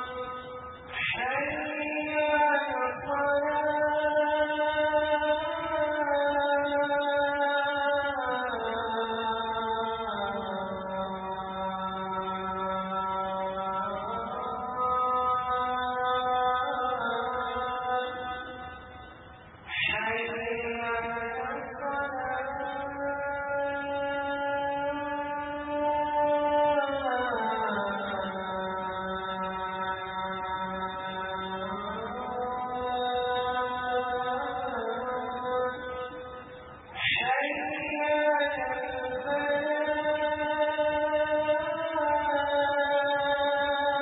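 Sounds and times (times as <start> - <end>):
man chanting melodically: 0.0 - 19.0, 19.6 - 44.0.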